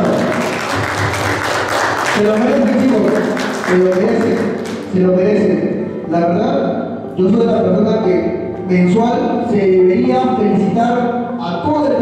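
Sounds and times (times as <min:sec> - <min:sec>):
audience applauding: 0:00.0 - 0:04.9.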